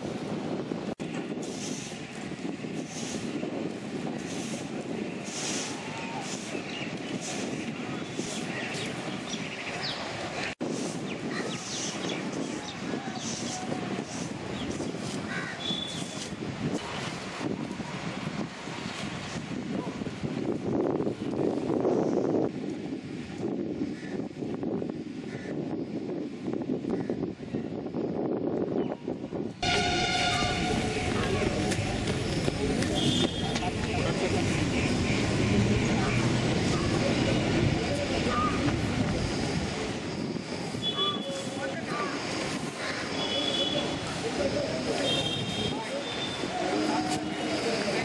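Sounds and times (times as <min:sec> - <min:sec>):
wind noise on microphone: 0:00.0 - 0:48.0
outdoor rumbling noise: 0:29.6 - 0:40.9.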